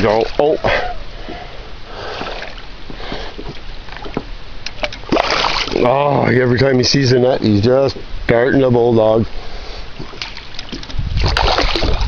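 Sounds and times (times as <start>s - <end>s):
water splashing and sloshing: 0.0s - 6.4s, 9.3s - 12.0s.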